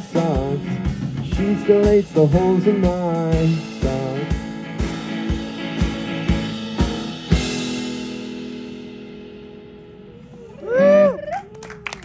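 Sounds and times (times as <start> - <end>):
drum hits with cymbal crashes: 0.4 - 9.4.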